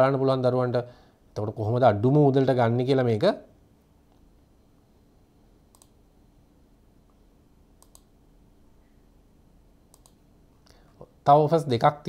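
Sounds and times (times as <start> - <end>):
faint computer mouse clicks: 5.7 - 6.0, 7.8 - 8.1, 9.9 - 10.2.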